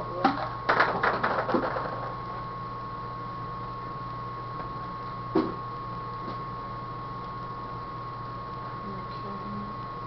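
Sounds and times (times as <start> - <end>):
steady hum with high whine: 0.0 - 10.0.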